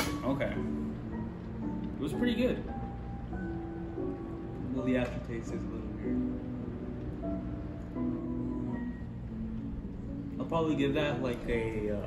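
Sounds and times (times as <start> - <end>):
slow sustained background music: 0.0 - 12.0.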